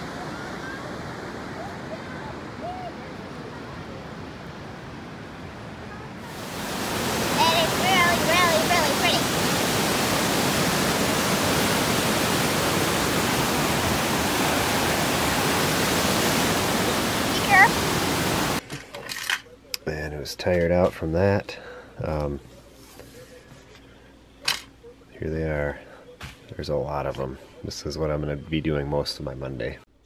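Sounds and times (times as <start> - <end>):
gently flowing river: 0.0 - 18.6
rapids rushing over rock: 6.2 - 18.6.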